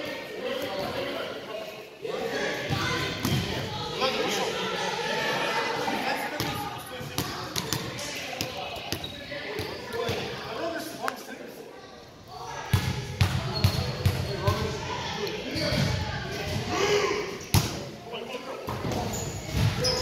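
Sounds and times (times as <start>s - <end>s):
shoe squeaks and knocks: 13.5s - 14.4s, 18.8s - 20.0s.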